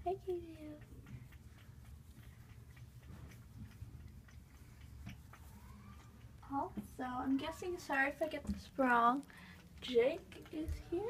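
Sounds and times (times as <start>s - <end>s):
light ticking: 0.0s - 11.0s.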